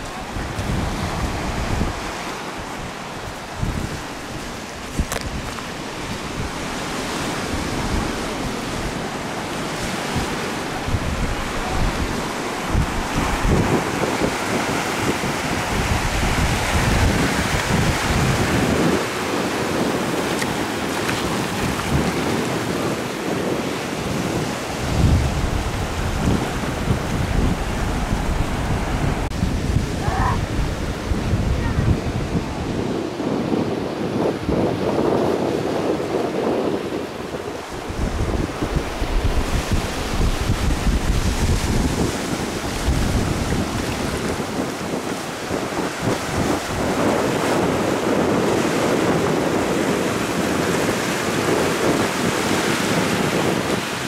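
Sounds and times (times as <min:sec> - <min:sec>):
ocean surf breaking on rocks: 0:00.0 - 0:54.0
wind buffeting microphone: 0:00.0 - 0:54.0.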